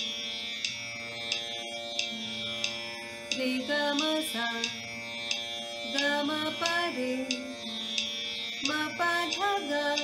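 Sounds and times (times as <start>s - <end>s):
tanpura drone with plucks: 0.0s - 10.0s.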